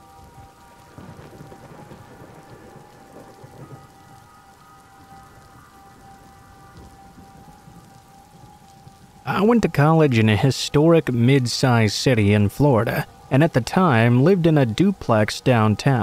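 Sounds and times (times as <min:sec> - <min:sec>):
soft steady rain: 0:00.0 - 0:16.0
thunder rumble: 0:00.0 - 0:16.0.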